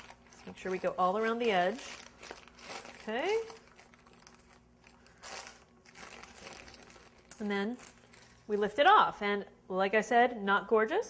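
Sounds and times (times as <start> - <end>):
parchment paper crinkling: 0.0 - 8.7.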